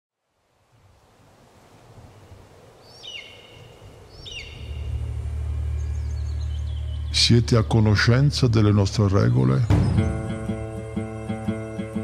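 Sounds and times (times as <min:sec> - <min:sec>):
short bird calls: 0:02.8 - 0:05.0
low steady drone: 0:04.5 - 0:09.1.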